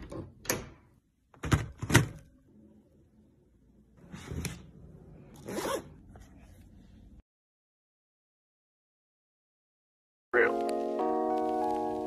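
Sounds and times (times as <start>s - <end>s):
zipper pulled: 5.4s - 6.1s.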